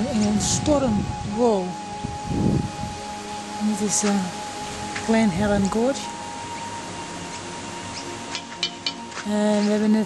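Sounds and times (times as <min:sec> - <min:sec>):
wind rushing: 0:00.0 - 0:08.3
faint held musical tones: 0:00.0 - 0:10.0.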